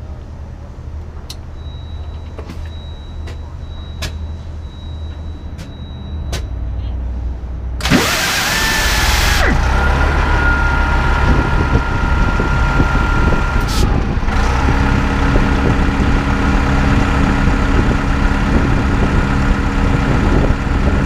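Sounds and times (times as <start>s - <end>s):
engine idling with high whine: 0.0s - 21.0s
diesel bus engine starting: 7.1s - 21.0s.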